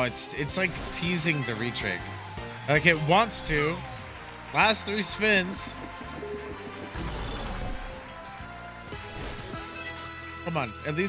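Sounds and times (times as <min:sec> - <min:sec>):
slot game music: 0:00.0 - 0:11.0
slot reels spinning effects: 0:09.3 - 0:10.8.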